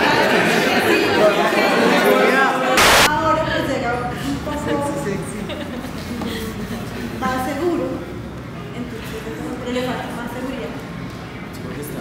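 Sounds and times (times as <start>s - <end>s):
overlapping indistinct chatter: 0.0s - 12.0s.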